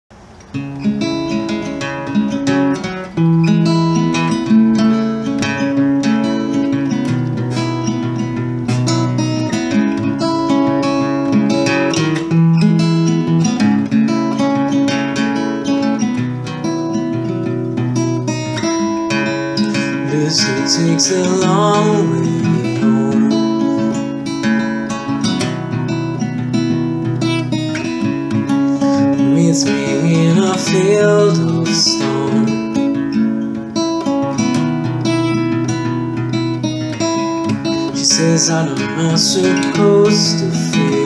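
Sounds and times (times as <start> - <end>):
solo acoustic guitar: 0.1 - 41.0.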